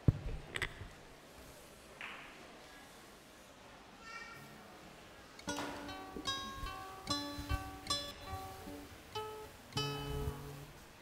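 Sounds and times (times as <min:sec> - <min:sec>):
acoustic guitar playing: 0:05.4 - 0:11.0.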